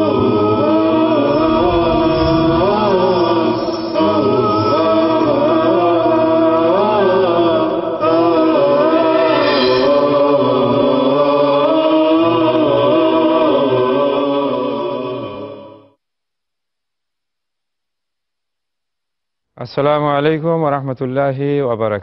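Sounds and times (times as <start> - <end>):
chanted vocal music: 0.0 - 16.0.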